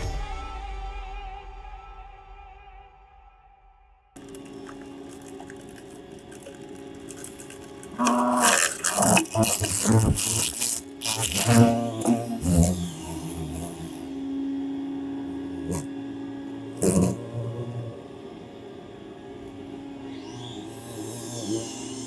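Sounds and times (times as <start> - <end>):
steady low hum: 4.2 - 22.0.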